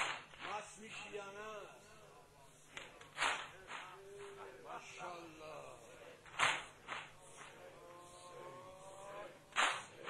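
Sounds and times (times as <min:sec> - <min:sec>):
rhythmic chest slaps: 0:00.0 - 0:10.0.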